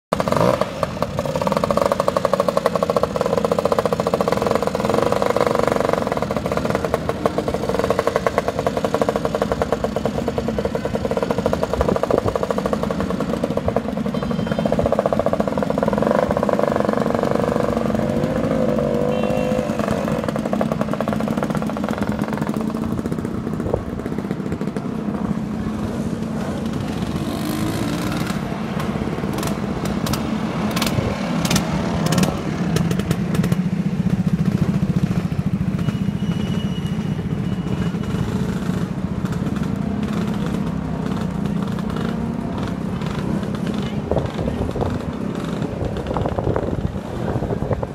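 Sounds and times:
scooter engines buzzing and revving: 0:00.1 - 0:47.9.

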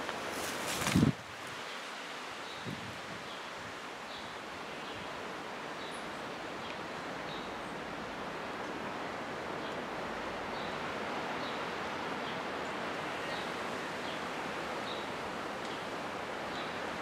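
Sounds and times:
wind rustling foliage: 0:00.0 - 0:17.0.

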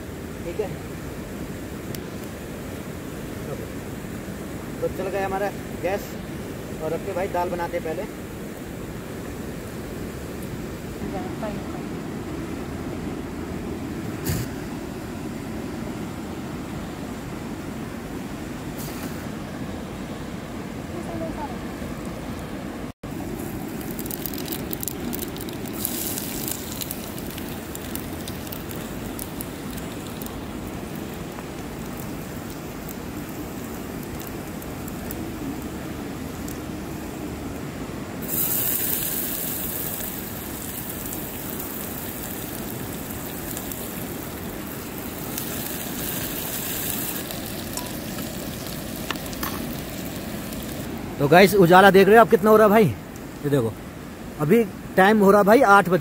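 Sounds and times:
oil sizzling and frying: 0:23.0 - 0:37.4, 0:38.2 - 0:51.0.

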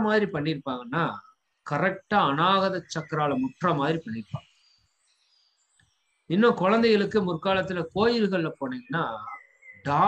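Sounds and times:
person speaking: 0:00.0 - 0:04.4, 0:06.3 - 0:10.0
faint high-pitched chirps: 0:00.0 - 0:10.0.

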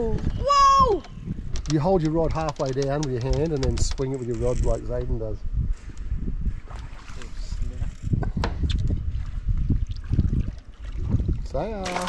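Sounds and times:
wind buffeting microphone: 0:00.0 - 0:12.0
sharp clicks: 0:01.0 - 0:05.1
water noise: 0:05.9 - 0:12.0.

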